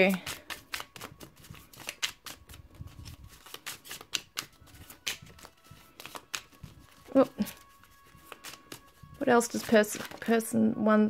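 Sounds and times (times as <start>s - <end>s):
cards being shuffled: 0.0s - 10.5s.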